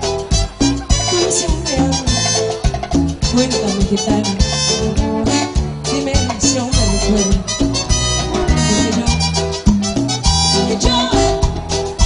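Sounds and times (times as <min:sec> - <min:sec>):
cumbia band music: 0:00.0 - 0:12.0.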